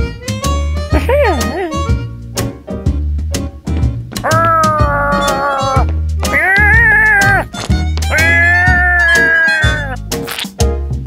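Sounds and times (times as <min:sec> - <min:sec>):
background music with bass line: 0:00.0 - 0:11.0
cartoon character screaming: 0:04.2 - 0:07.5, 0:08.1 - 0:10.0.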